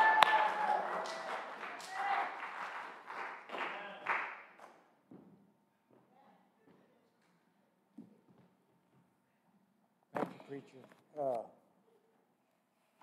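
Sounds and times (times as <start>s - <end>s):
congregation clapping: 0.0s - 4.8s
loud close hand claps: 0.0s - 4.8s.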